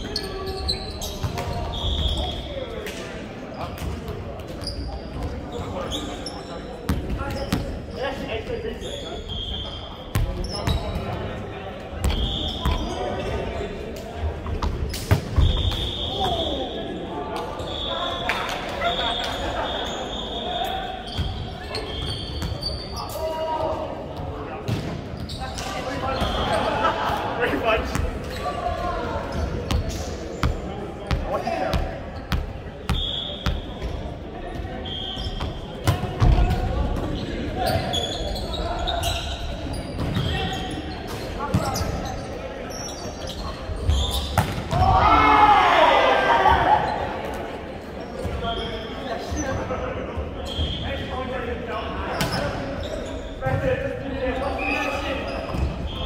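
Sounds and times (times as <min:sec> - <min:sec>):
sneakers squeaking on wooden court: 0:00.0 - 0:02.5, 0:03.5 - 0:16.6, 0:17.6 - 0:23.3, 0:24.1 - 0:26.8, 0:27.8 - 0:44.8, 0:48.0 - 0:51.2, 0:52.1 - 0:53.7, 0:54.3 - 0:56.0
players calling and chattering: 0:00.0 - 0:56.0.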